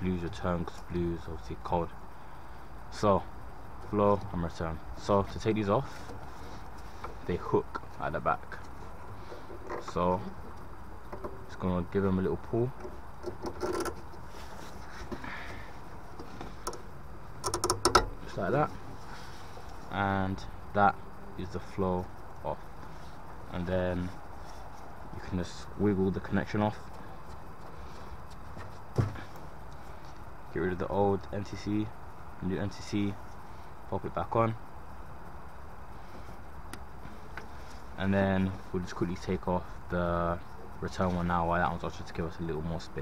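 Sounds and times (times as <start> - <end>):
low background rumble: 0.0 - 43.0
sensor clip clicking and rattling: 12.8 - 14.2, 16.2 - 18.2.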